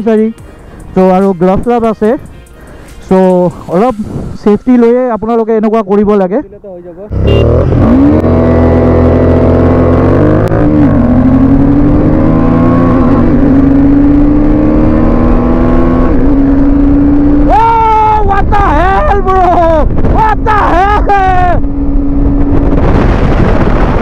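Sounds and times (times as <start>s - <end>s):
motorcycle engine accelerating: 7.1s - 18.0s, 19.9s - 24.0s.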